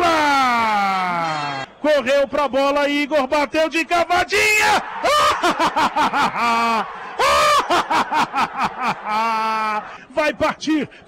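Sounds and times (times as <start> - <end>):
man crying out loudly: 4.4 - 8.4
man laughing: 5.0 - 9.9.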